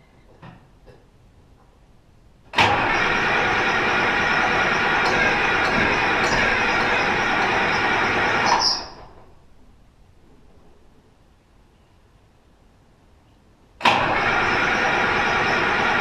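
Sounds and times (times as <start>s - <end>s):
starter cranking diesel engine: 2.5s - 9.0s, 13.8s - 16.0s.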